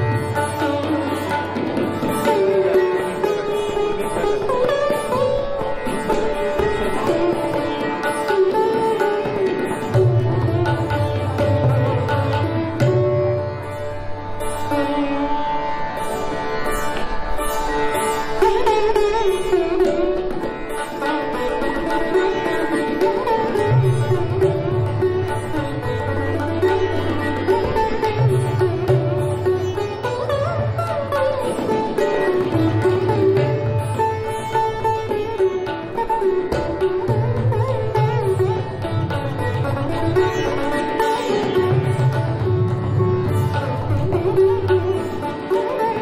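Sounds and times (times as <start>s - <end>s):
sitar with pitch slides: 0.0s - 46.0s
tabla: 0.0s - 46.0s.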